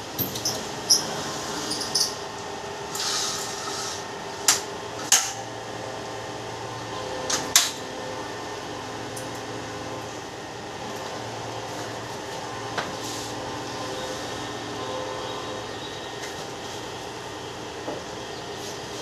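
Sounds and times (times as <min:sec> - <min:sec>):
steady machine hum: 0:00.0 - 0:19.0.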